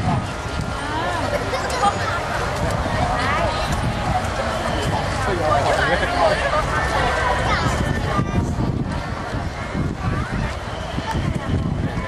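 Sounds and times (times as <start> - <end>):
people talking and exclaiming: 0.0 - 12.0
steady low rumble: 0.0 - 12.0.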